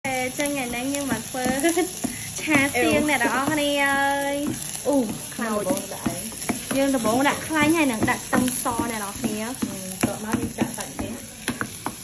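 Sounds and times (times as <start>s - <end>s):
garlic sizzling in hot oil: 0.0s - 12.0s
spatula stirring and scraping: 0.2s - 12.0s
spatula knocking on pot: 0.8s - 12.0s.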